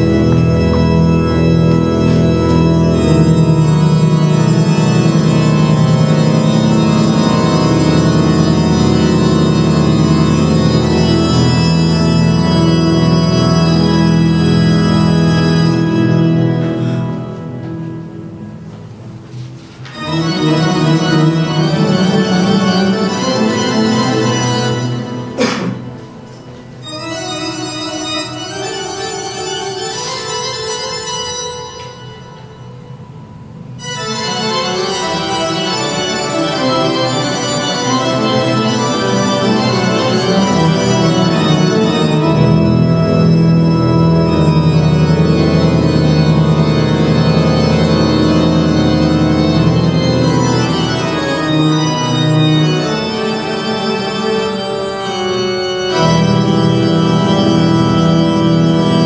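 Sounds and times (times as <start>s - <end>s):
pipe organ chords: 0.0s - 59.0s.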